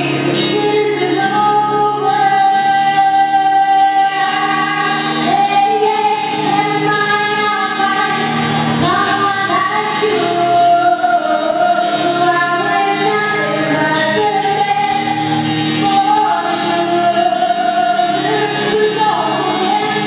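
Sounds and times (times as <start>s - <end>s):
acoustic guitar: 0.0s - 20.0s
woman singing: 0.0s - 20.0s.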